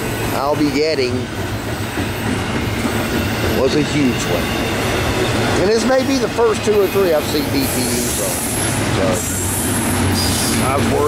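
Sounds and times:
freight train wheels rumbling: 0.0s - 11.0s.

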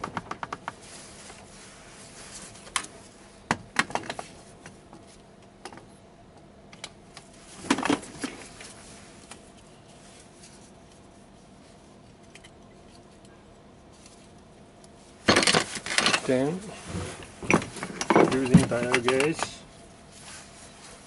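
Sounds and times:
metal tools clinking on workbench: 17.5s - 19.6s.

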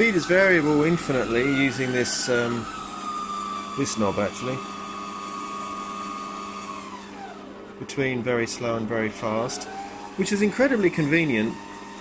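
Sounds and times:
lathe whining: 0.0s - 12.0s.

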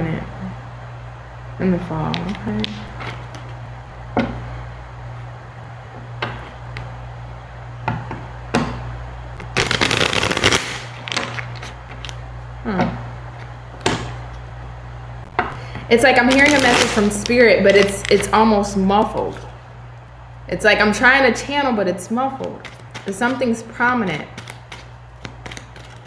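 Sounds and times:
steady low hum: 0.0s - 26.0s
cards riffling: 9.4s - 12.2s, 16.2s - 18.4s, 22.4s - 23.5s, 24.2s - 26.0s
cards snapping and tapping: 9.4s - 12.2s, 22.6s - 23.4s, 24.3s - 26.0s.

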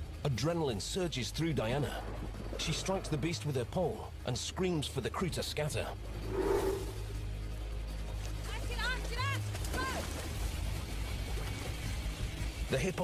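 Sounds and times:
dramatic score low drone: 5.8s - 8.3s.

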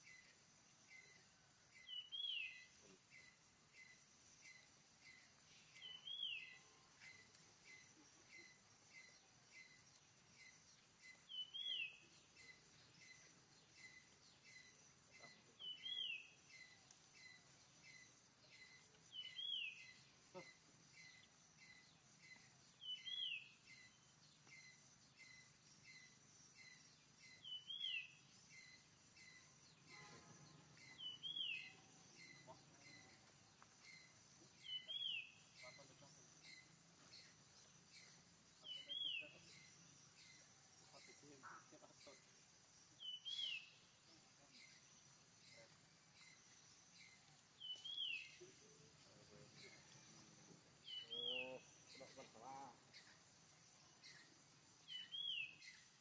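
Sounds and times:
faint bird chirps: 0.0s - 56.0s
lower-pitched bird cry: 50.9s - 51.7s.

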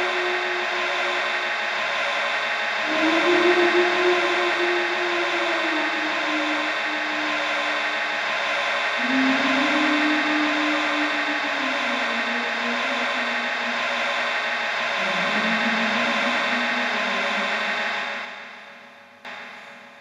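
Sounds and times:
low held tone: 0.0s - 19.7s.

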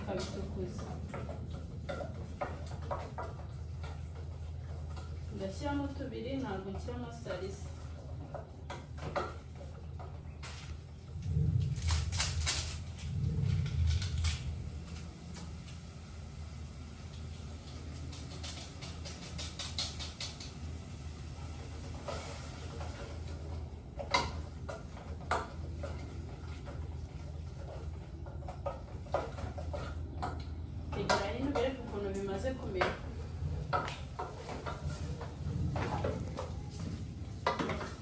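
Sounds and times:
steady low hum: 0.0s - 19.6s.

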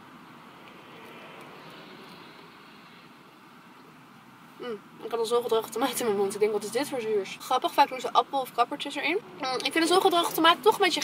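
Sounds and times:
vehicle background noise: 0.0s - 11.0s.

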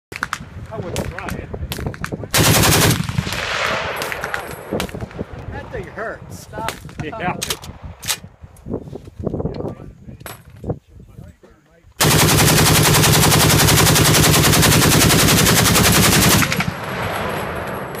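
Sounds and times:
machine gun automatic burst: 2.4s - 4.3s, 12.0s - 17.7s
gunfire echo: 2.4s - 5.2s, 12.0s - 18.0s.

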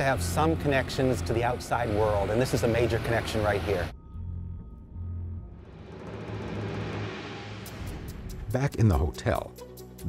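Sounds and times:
dark suspenseful music: 0.0s - 10.0s
low rumble: 3.6s - 8.8s.

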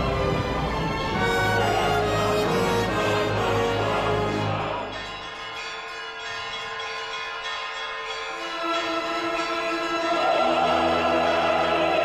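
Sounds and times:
bells pealing: 0.0s - 12.0s.

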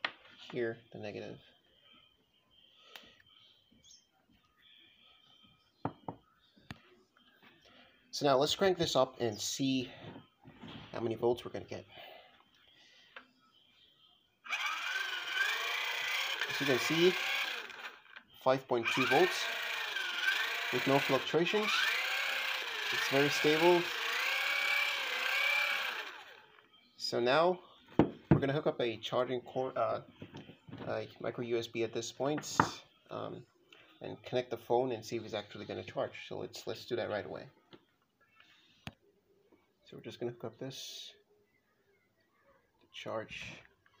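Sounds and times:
geared motor whirring and whining: 14.5s - 26.7s.

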